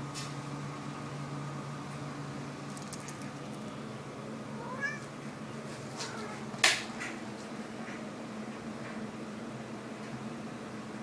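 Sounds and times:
cat meowing: 4.6s - 5.1s.

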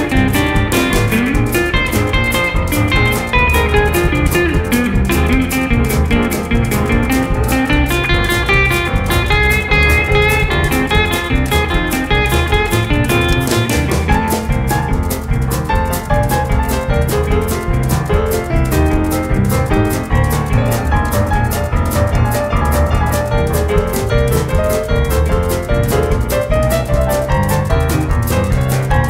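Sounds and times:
swung drum beat: 0.0s - 29.0s.

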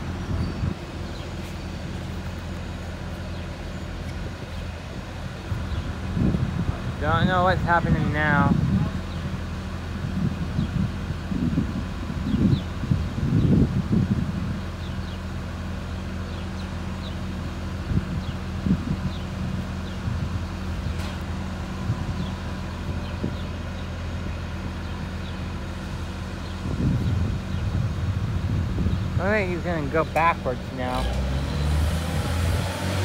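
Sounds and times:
diesel engine running: 0.0s - 33.0s
wind buffeting microphone: 0.0s - 33.0s.

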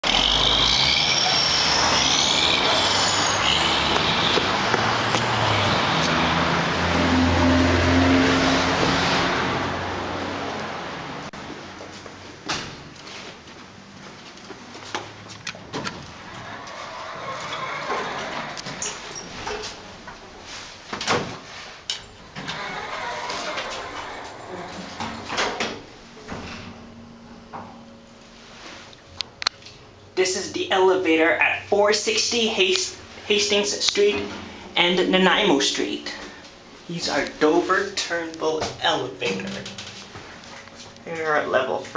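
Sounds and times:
high squealing tones: 0.0s - 8.2s, 16.2s - 19.6s, 22.0s - 26.0s
heavy vehicle engine drone: 0.0s - 12.2s, 22.0s - 28.8s
road traffic rushing: 0.0s - 12.4s, 16.0s - 26.2s
elevator doors sliding shut: 21.9s - 27.0s
elevator clunk: 22.0s - 28.0s
elevator motor hum: 22.0s - 28.1s.

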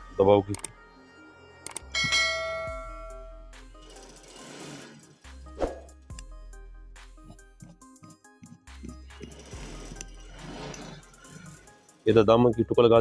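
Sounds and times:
bright bell-like ding: 1.9s - 3.5s.

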